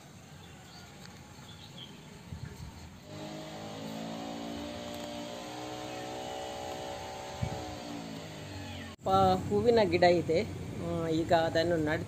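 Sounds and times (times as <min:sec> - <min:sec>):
engine droning hum: 0:03.0 - 0:12.0.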